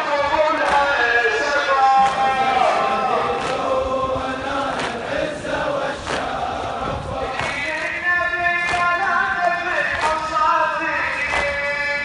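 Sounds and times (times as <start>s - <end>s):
crowd chanting in unison: 0.0s - 12.0s.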